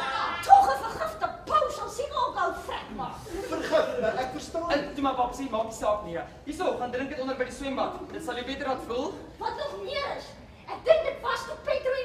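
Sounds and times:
actors talking: 0:00.0 - 0:12.0.

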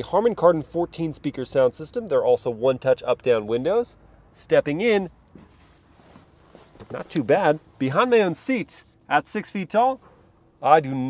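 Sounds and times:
rustling and shuffling: 0:04.9 - 0:09.1.

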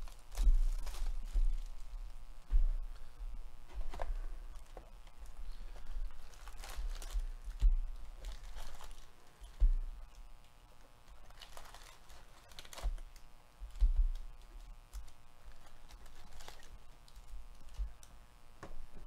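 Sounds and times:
cardboard packs rustling and scraping: 0:00.0 - 0:10.1, 0:11.0 - 0:13.2, 0:13.8 - 0:18.0
dull thumps on box: 0:13.7 - 0:14.3.

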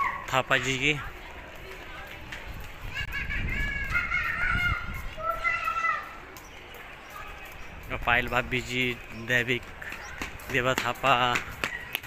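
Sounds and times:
child calling in sing-song tones: 0:02.8 - 0:06.2.

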